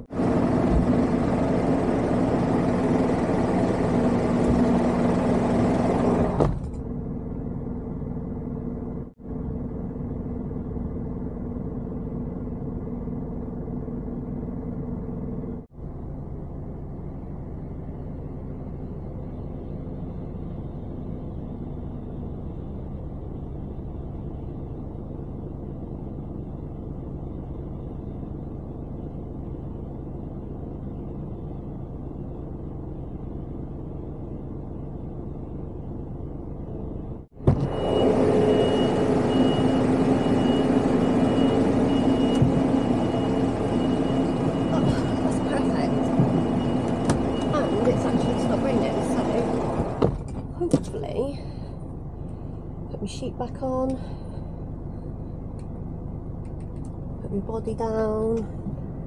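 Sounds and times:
diesel engine rumbling: 0:00.0 - 0:59.0.

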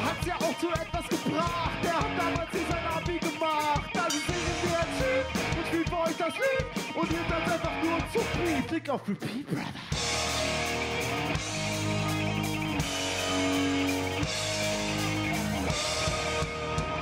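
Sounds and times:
rock band playing: 0:00.0 - 0:08.9, 0:09.9 - 0:17.0
vocalist rapping: 0:00.0 - 0:09.9.

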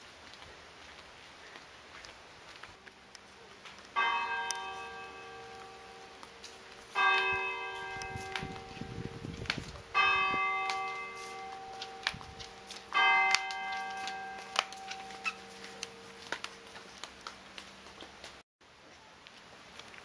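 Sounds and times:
church bell tolling: 0:04.0 - 0:16.8.

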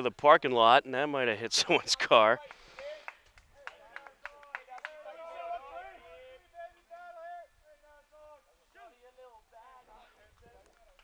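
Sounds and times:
hand claps: 0:02.3 - 0:05.0
distant players calling out: 0:03.7 - 0:10.3.

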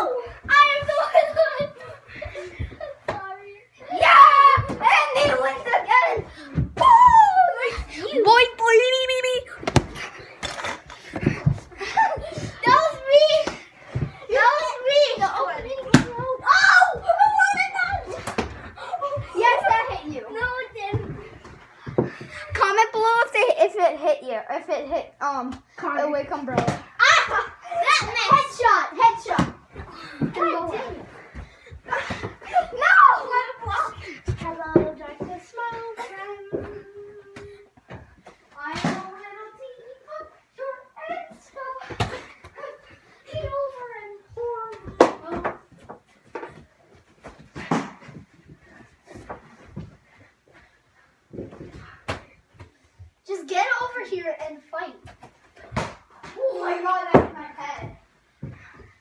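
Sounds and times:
children shouting and talking: 0:00.0 - 0:10.2, 0:11.0 - 0:37.8, 0:38.5 - 0:45.8, 0:56.2 - 0:58.6
thumps and knocks of dodgeball: 0:04.0 - 0:07.8, 0:09.6 - 0:22.2, 0:26.4 - 0:32.8, 0:41.8 - 0:42.6, 0:47.2 - 0:48.3, 0:55.1 - 0:56.5.

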